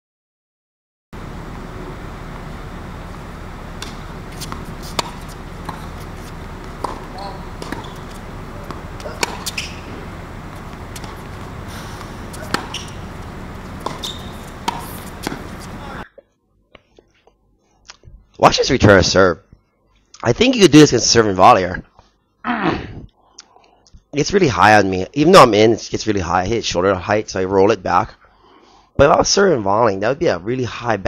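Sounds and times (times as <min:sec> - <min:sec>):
steady background hiss: 0:01.2 - 0:16.2
tennis ball pops: 0:03.8 - 0:16.0.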